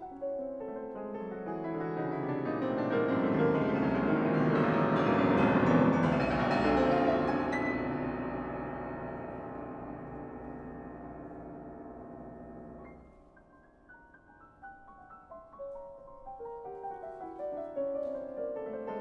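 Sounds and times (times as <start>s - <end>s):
grand piano run: 0.0s - 19.0s.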